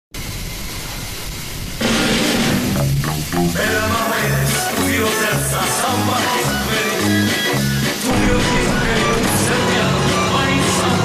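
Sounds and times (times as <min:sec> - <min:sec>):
steady rushing hiss: 0:00.2 - 0:11.0
music: 0:01.8 - 0:11.0
low rumble: 0:08.1 - 0:11.0.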